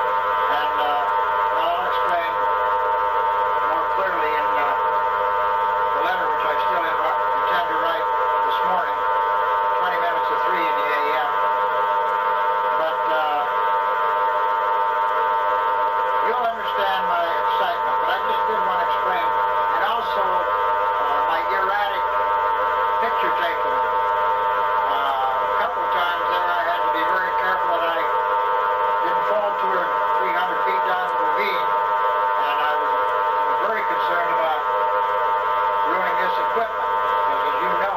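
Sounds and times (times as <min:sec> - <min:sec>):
buzzing electronic drone: 0:00.0 - 0:37.9.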